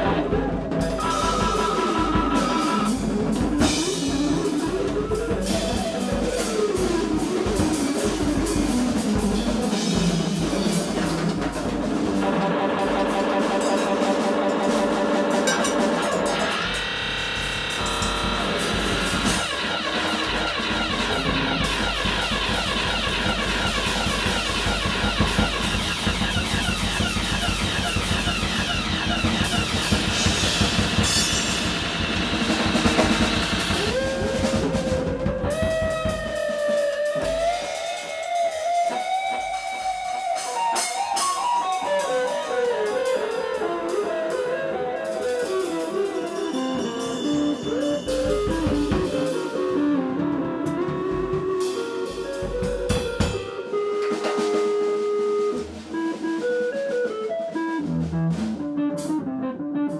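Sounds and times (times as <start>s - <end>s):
busy drumming: 0.0s - 59.9s
sliding electric guitar: 0.0s - 59.9s.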